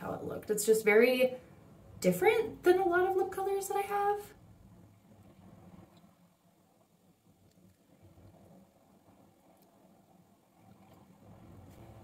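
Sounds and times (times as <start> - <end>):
faint ticks: 7.4 - 8.4.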